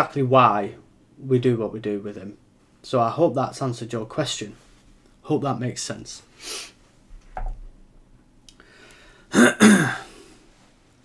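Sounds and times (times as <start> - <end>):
man clearing his throat: 9.3 - 10.1.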